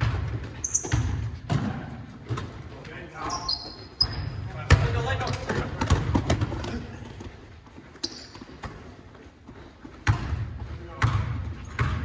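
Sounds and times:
sneakers squeaking on gym floor: 0.0s - 12.0s
basketball bouncing on hardwood: 10.0s - 12.0s.

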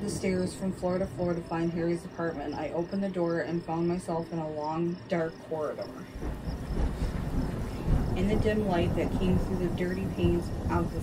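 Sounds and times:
thunder rumbling: 0.0s - 11.0s.

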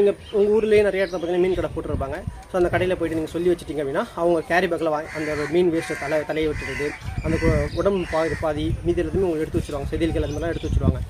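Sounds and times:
man talking: 0.0s - 11.0s
chicken calling: 5.0s - 8.6s.

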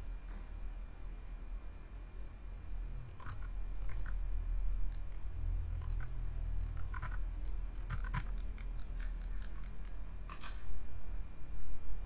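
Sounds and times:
low hum: 0.0s - 12.0s
mouse and keyboard clicks: 3.2s - 4.2s, 5.8s - 10.6s.

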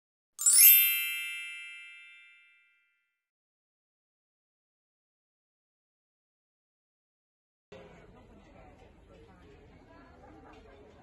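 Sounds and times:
rising chime shimmer: 0.4s - 2.6s
bright ringing tone: 0.4s - 2.8s.

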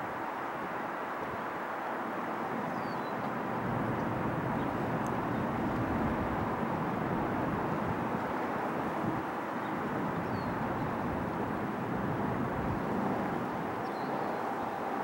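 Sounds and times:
distant helicopter rumble: 3.2s - 9.0s.

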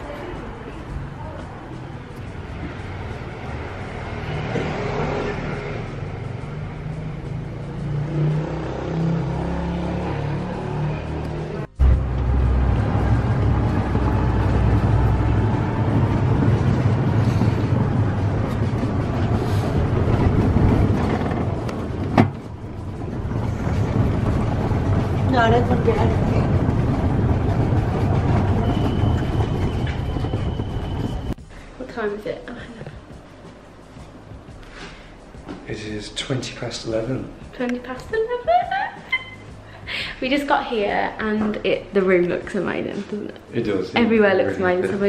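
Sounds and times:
golf cart motor and wheels rumbling: 11.7s - 31.4s.

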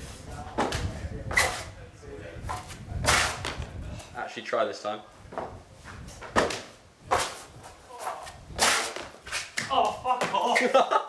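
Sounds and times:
footfalls on concrete: 0.5s - 1.6s, 2.5s - 3.7s, 5.3s - 10.8s
landing impact on paving: 6.2s - 7.4s.

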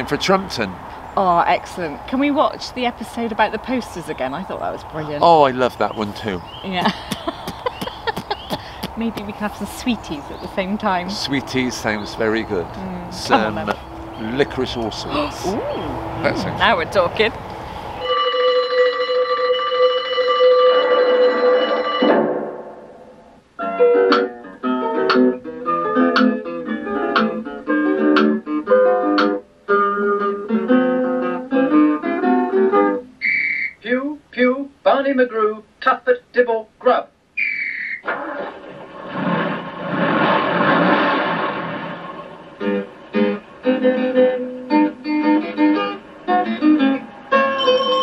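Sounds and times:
man's voice: 5.2s - 6.4s, 11.2s - 16.6s, 33.8s - 37.1s
short whistle-like tone: 33.2s - 33.8s, 37.4s - 38.0s
steady rushing noise: 38.5s - 43.9s
plucked-string music: 42.6s - 48.0s.

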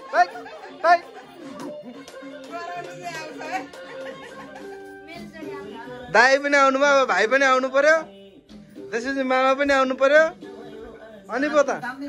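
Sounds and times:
group of people chattering: 0.0s - 8.2s
background music: 0.0s - 12.0s.

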